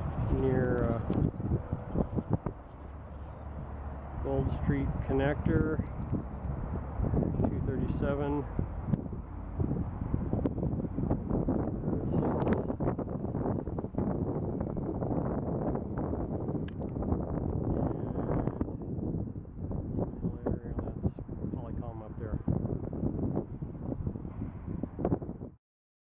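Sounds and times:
road traffic rumble: 0.0s - 25.4s
wind buffeting microphone: 0.0s - 25.6s.

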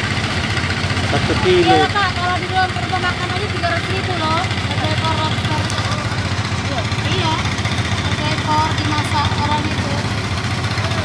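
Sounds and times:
engine idling: 0.0s - 11.0s
people talking: 1.1s - 10.1s.

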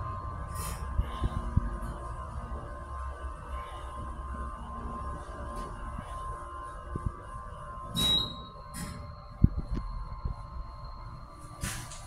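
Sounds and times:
faint steady hum: 0.0s - 12.0s
elevator beep: 7.8s - 11.9s.

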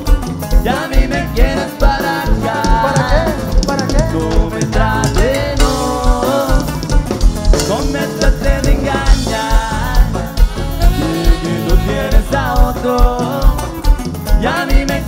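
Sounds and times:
accordion: 0.0s - 15.0s
bass guitar: 0.0s - 15.0s
drum kit: 0.0s - 15.0s
saxophone: 9.0s - 14.1s.

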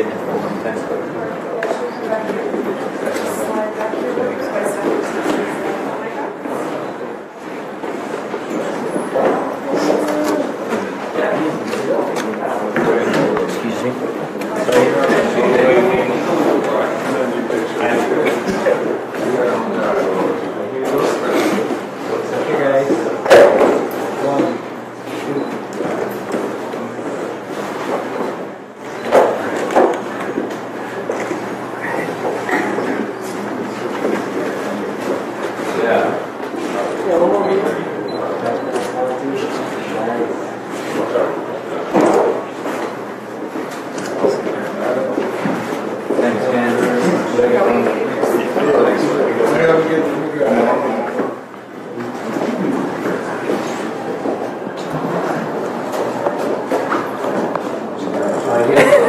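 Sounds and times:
crowd chatter: 0.0s - 59.0s.

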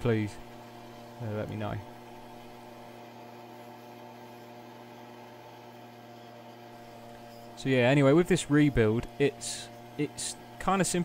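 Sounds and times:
electric motor hum: 0.0s - 11.0s.

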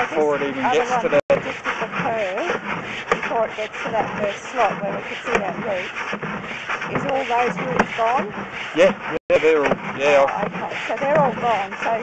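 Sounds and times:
man talking: 0.0s - 1.4s, 8.8s - 10.3s
rubbing scraping noise: 0.0s - 12.0s.

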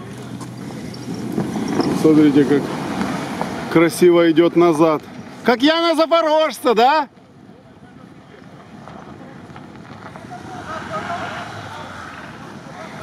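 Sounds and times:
vehicle engine and tyres on snow: 0.0s - 13.0s
wind noise on microphone: 0.5s - 3.7s.

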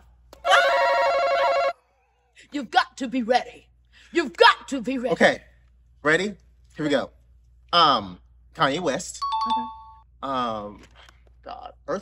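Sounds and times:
loud electronic ringing tone: 0.5s - 1.7s.

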